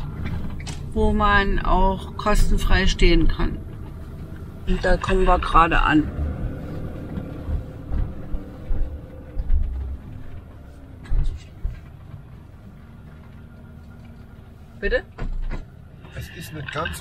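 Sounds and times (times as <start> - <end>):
low thumps and rattles: 0.0 - 14.4, 15.1 - 16.2
vehicle engine rumble: 0.0 - 17.0.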